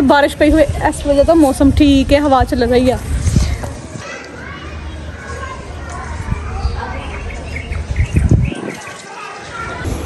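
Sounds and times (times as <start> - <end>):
wind rumble on microphone: 0.3 - 4.0, 6.1 - 8.9
distant children's voices: 3.4 - 10.0.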